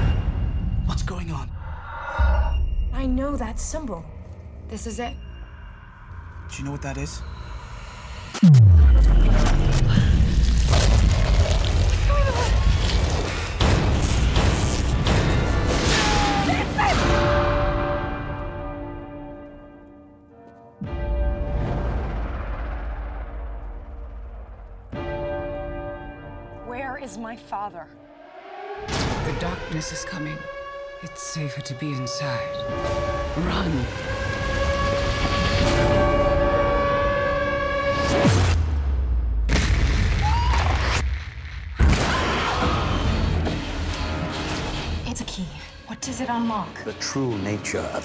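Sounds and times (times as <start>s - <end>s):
heavy low boom: 8.4s - 11.7s.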